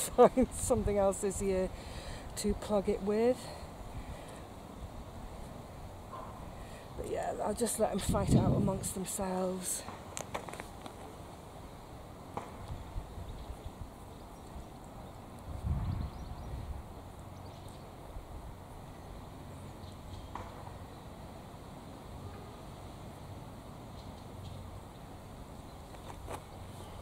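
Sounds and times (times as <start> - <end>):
wind buffeting microphone: 7.9 - 9.1, 15.4 - 17.0.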